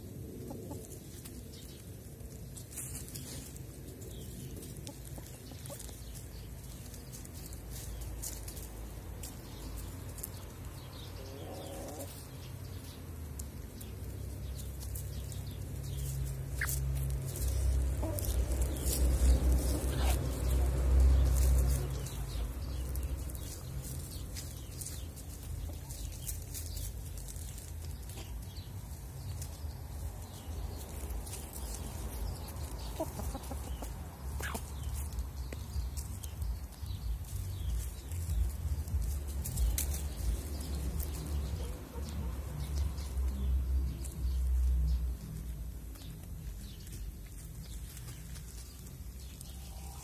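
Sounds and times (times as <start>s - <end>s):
hens clucking: 0.4s - 1.3s, 4.4s - 9.6s, 11.1s - 12.4s, 15.9s - 29.6s, 30.8s - 36.4s, 39.0s - 43.3s.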